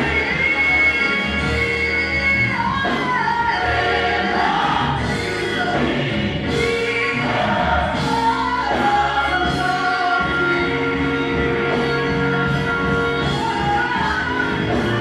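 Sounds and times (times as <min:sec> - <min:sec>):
choir singing: 0:00.0 - 0:15.0
instrumental accompaniment: 0:00.0 - 0:15.0
woman singing gospel: 0:00.0 - 0:15.0.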